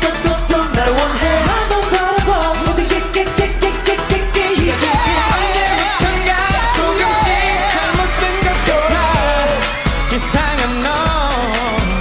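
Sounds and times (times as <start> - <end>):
electronic backing track: 0.0 - 12.0
male voice singing: 0.0 - 12.0.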